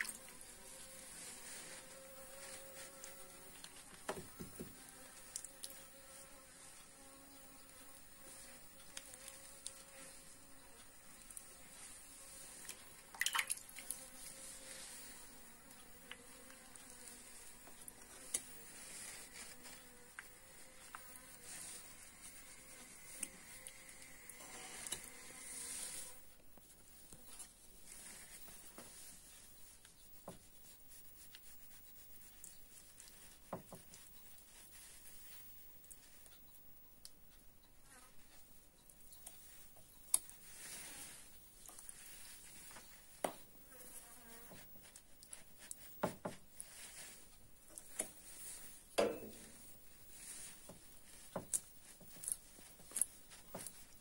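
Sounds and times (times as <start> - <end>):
honeybee buzzing: 0.0 - 26.3, 43.2 - 44.8.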